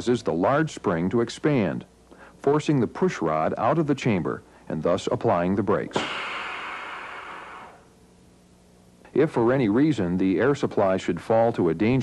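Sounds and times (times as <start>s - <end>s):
compressed air hissing: 6.0s - 7.9s.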